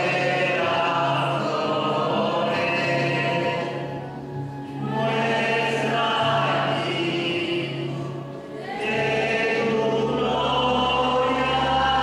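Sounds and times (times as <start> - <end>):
group singing religious song: 0.0 - 12.0.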